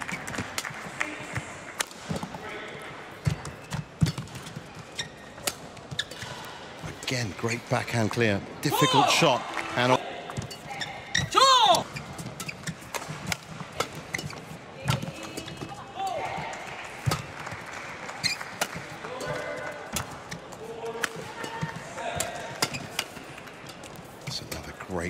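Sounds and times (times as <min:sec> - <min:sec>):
shoes squeaking on court: 0:00.0 - 0:09.2, 0:10.2 - 0:24.9
rackets striking shuttlecock: 0:03.2 - 0:06.4, 0:10.3 - 0:17.6, 0:18.2 - 0:24.6
crowd voices and shouts: 0:06.2 - 0:12.1, 0:14.8 - 0:23.8.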